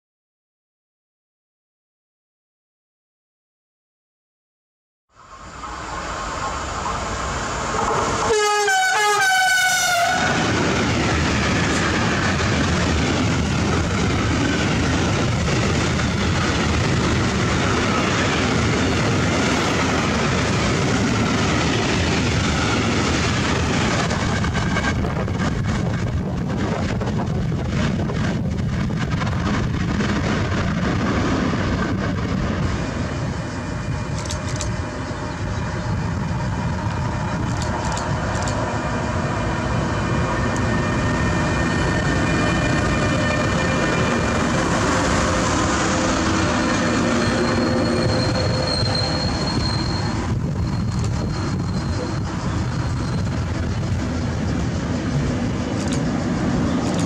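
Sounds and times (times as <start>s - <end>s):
train wheels rolling on rails: 5.2s - 57.0s
locomotive horn blast: 8.2s - 10.5s.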